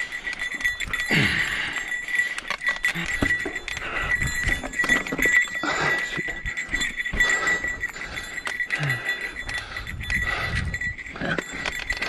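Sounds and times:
bike rattling on rocky trail: 0.0 - 12.0
heavy rhythmic breathing: 0.0 - 12.0.

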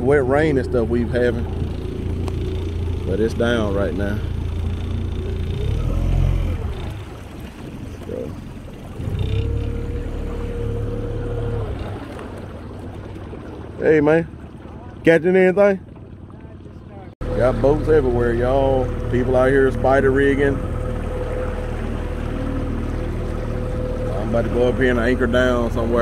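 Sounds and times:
outboard motor running: 0.0 - 26.0.

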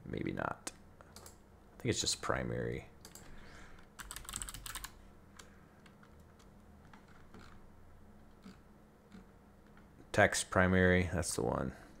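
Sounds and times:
faint keyboard typing: 1.0 - 1.4, 3.0 - 7.6, 8.2 - 9.9.

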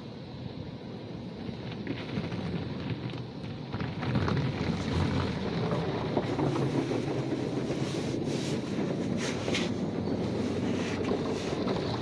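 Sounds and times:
car wash spraying water: 4.5 - 12.0.

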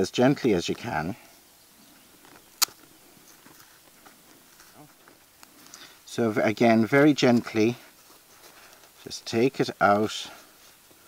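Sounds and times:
sharp click: 2.6 - 2.8.

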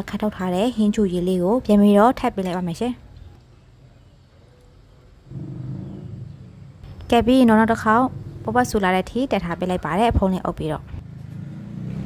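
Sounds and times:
low rumble: 5.2 - 8.8.

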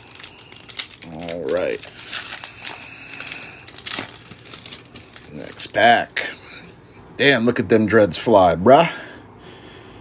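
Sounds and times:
card pack wrapper crinkling: 0.0 - 6.2.

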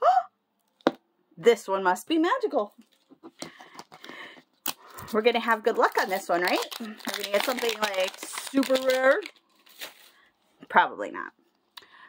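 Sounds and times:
plastic wrap rustling and scratching: 4.9 - 10.4.

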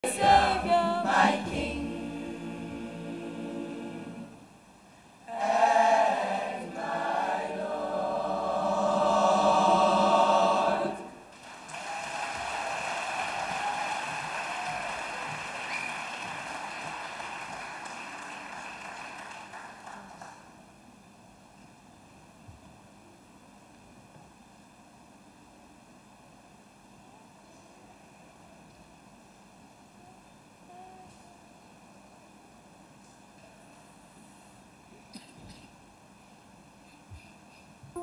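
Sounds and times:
boys' choir singing: 0.0 - 4.5, 5.3 - 11.2
audience applause: 11.3 - 20.6.

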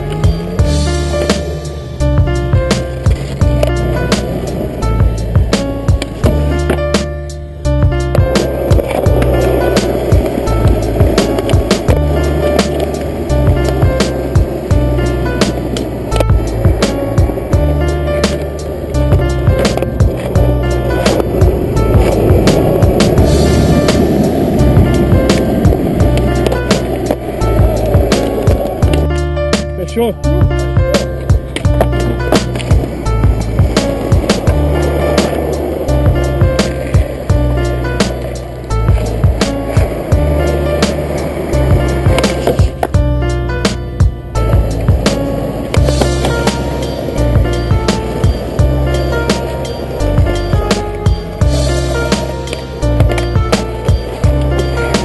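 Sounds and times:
music with steady beat and bass: 0.0 - 55.0
skateboard wheels rolling on asphalt: 0.0 - 55.0.

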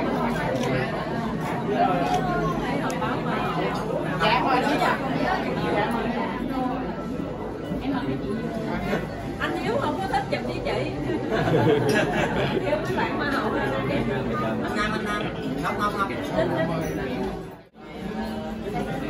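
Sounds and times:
people chattering: 0.0 - 19.0.

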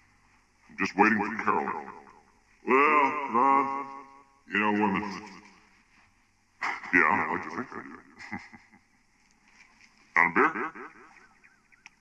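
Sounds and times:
person's voice bursts: 2.6 - 5.4.

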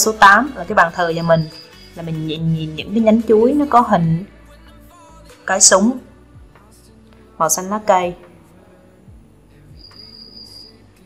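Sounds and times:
faint high-pitched tone: 1.2 - 2.1.

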